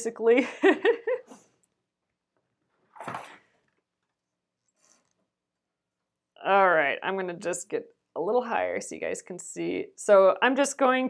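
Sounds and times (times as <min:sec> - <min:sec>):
woman laughing: 0:00.4 - 0:01.4.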